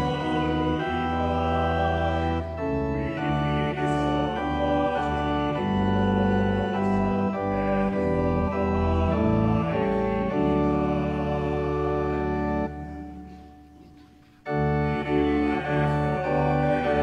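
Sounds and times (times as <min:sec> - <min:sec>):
church organ playing hymn: 0:00.0 - 0:17.0.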